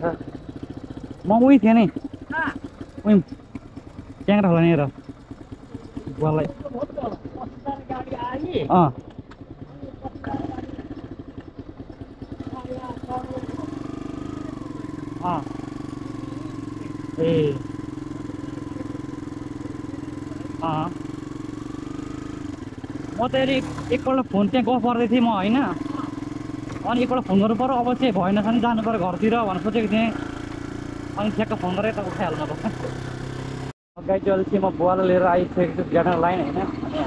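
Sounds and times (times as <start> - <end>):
motorcycle engine running: 0.0 - 37.0.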